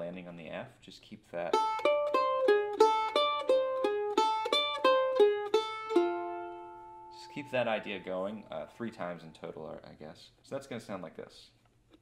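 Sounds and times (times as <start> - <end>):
mandolin picking: 1.4 - 8.8.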